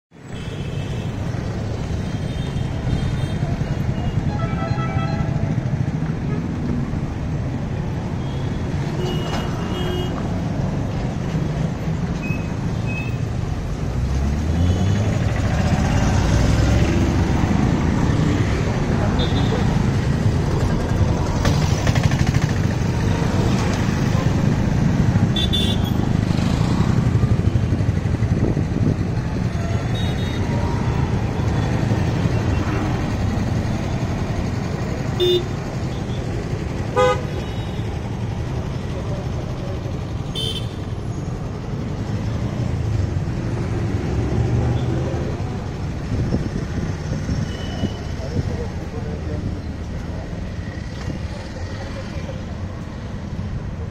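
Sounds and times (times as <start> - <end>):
road traffic rumble: 0.1 - 53.9.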